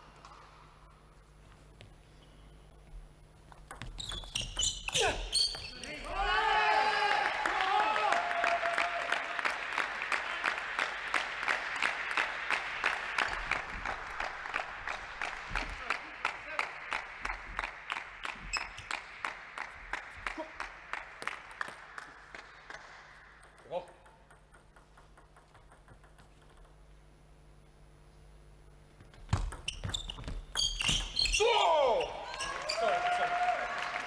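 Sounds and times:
rhythmic clapping: 0:07.2 - 0:26.9
rising squeak: 0:29.7 - 0:31.4.

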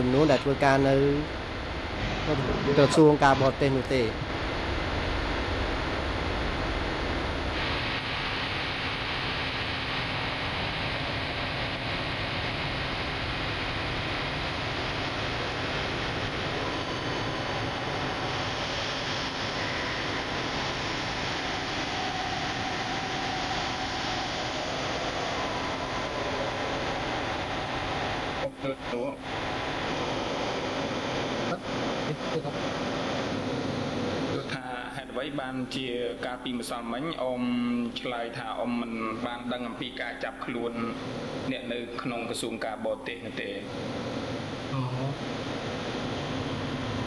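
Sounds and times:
steady hiss-like noise: 0:00.0 - 0:47.0.

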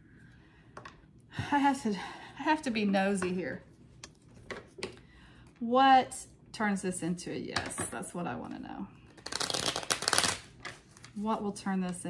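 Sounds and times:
cards being shuffled: 0:09.1 - 0:11.2.

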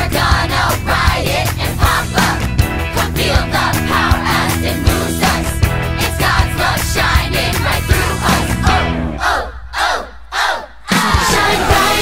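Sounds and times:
group of voices shouting: 0:08.6 - 0:12.0.

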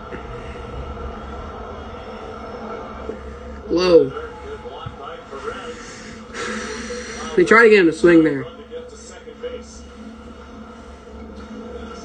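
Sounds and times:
constant hum: 0:00.0 - 0:12.0
steady low rumble: 0:00.0 - 0:12.0.

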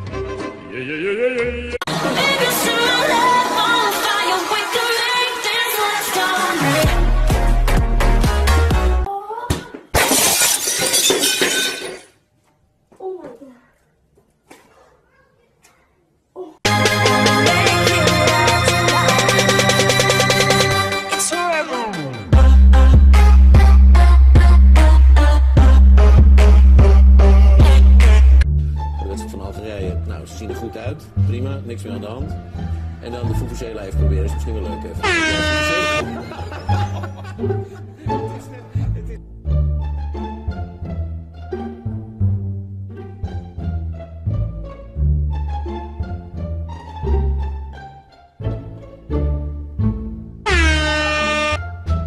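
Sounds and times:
background music with bass: 0:06.6 - 0:09.1, 0:16.7 - 0:52.0
glass shattering: 0:10.0 - 0:12.2
plastic stadium horn blast: 0:35.0 - 0:36.1, 0:50.4 - 0:51.6.

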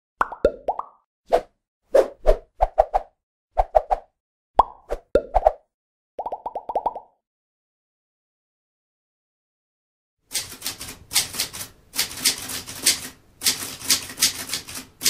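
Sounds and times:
short pops and plops: 0:00.2 - 0:01.0, 0:06.2 - 0:07.2.

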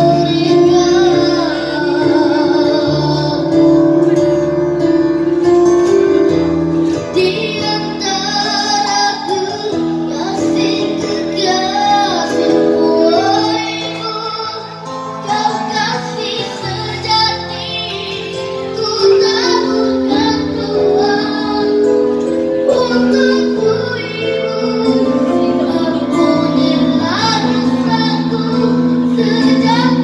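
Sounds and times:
boy singing a ballad: 0:00.0 - 0:30.0
keyboard chords: 0:00.0 - 0:30.0.

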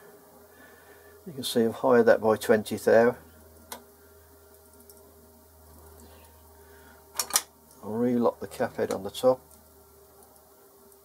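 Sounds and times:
faint workshop hum: 0:00.0 - 0:11.0.

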